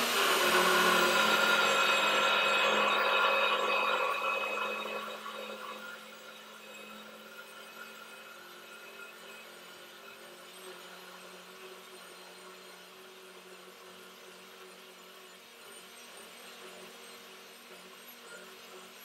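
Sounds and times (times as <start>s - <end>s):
blender grinding sugar: 0.0s - 19.0s.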